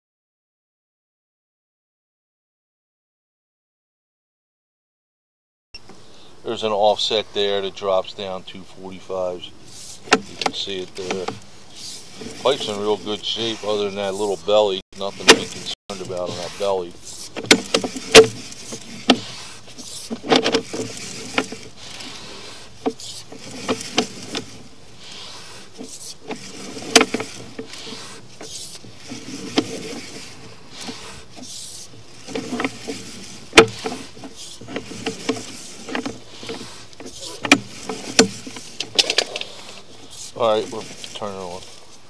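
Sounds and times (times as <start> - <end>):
push cable scraping: 6.7 - 42.0.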